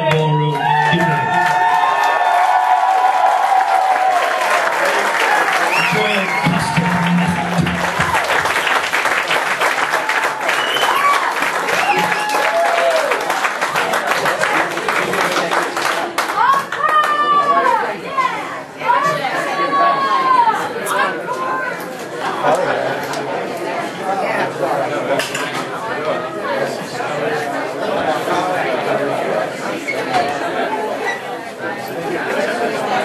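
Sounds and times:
crowd cheering and shouting: 0.0s - 8.6s, 9.9s - 13.3s, 16.3s - 21.8s
audience clapping: 0.0s - 17.8s
crowd chatter and calls: 0.0s - 33.0s.

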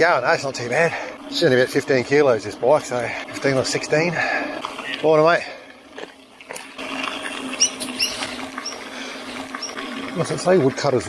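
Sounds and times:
bike tires rolling on dirt: 0.0s - 11.0s
high chirping squeaks: 7.5s - 8.9s, 9.6s - 9.8s.

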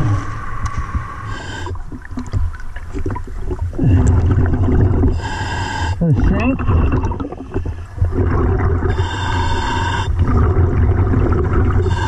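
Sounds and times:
exhaled bubbles rumbling: 0.0s - 5.4s, 6.0s - 12.0s.

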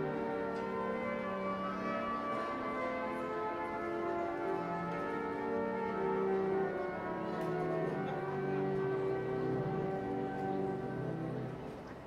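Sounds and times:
pipe organ slow chords: 0.0s - 11.6s.

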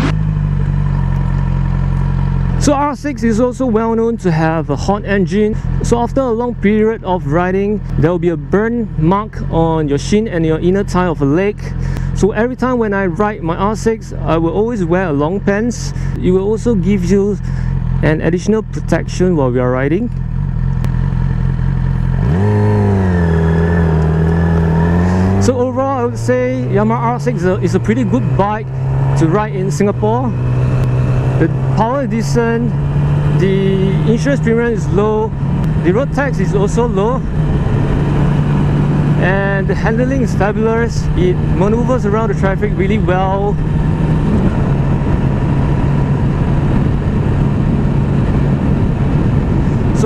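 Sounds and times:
motorcycle engine idling: 0.0s - 50.0s.

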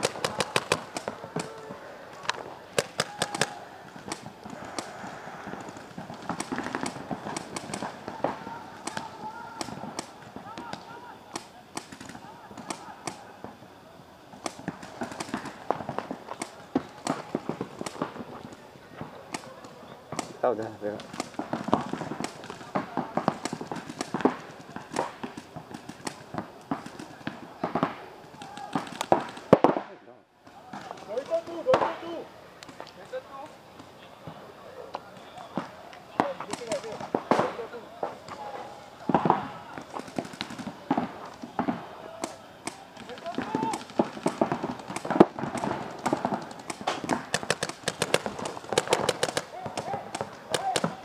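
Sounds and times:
paintball markers firing: 0.0s - 13.5s, 14.4s - 30.0s, 35.6s - 38.4s, 39.0s - 51.0s
distant shouting: 0.0s - 29.6s, 30.4s - 51.0s.

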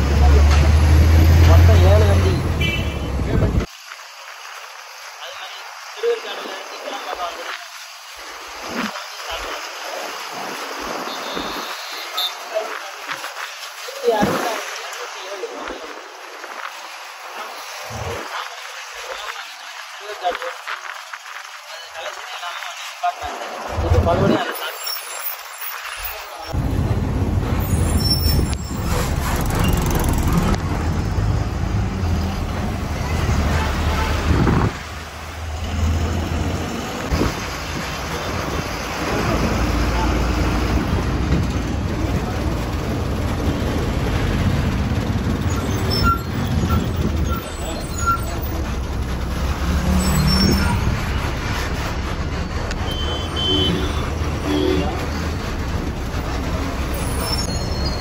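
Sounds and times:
bus engine rumble: 0.0s - 58.0s
road and tyre noise: 0.0s - 58.0s
street traffic: 0.0s - 58.0s.

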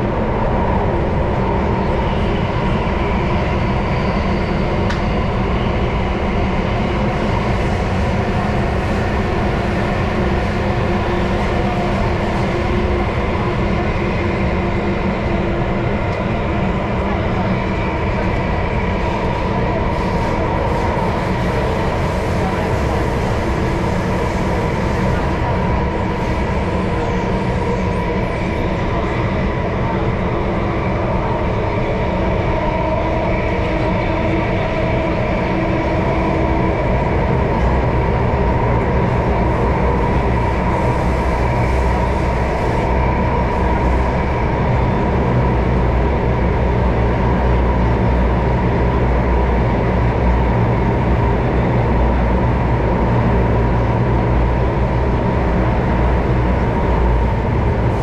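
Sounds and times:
train rumble and rail roar: 0.0s - 58.0s.

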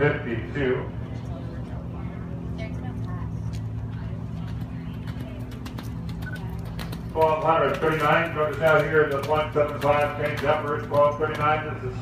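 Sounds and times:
horse hoofbeats on sand: 4.5s - 11.8s.

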